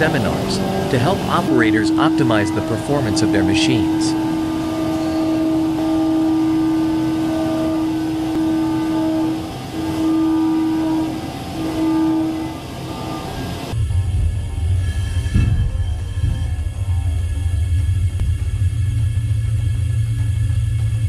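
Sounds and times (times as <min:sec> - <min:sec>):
deep rumble: 0:00.0 - 0:21.0
lathe humming whine: 0:00.0 - 0:21.0.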